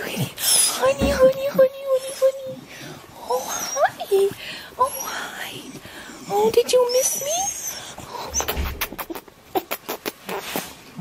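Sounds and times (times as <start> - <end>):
dog whimpering: 0.2 - 9.7.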